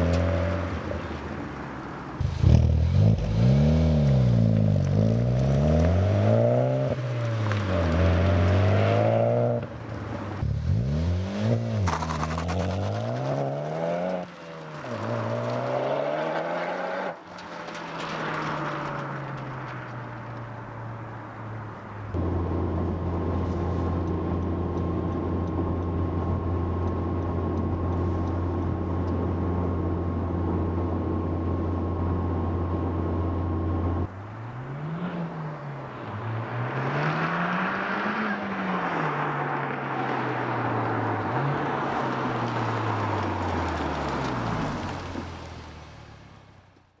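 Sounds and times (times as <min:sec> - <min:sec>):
car engine revving: 0:10.3 - 0:17.8
car accelerating past: 0:34.4 - 0:45.9.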